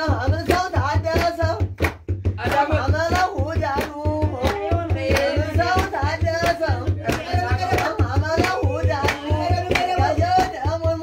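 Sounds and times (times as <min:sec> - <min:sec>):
hands clapping in rhythm: 0:00.0 - 0:11.0
group singing: 0:02.4 - 0:11.0.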